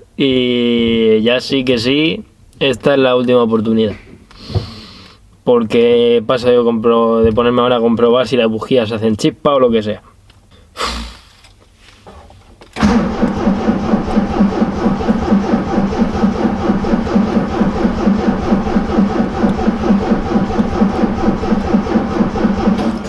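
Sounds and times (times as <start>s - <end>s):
engine cranking on starter motor: 12.7s - 23.0s.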